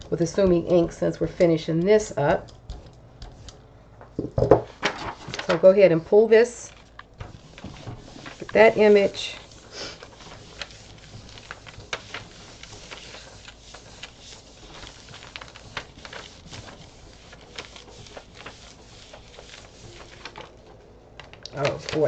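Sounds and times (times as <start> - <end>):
paper rustling: 4.3 - 22.0.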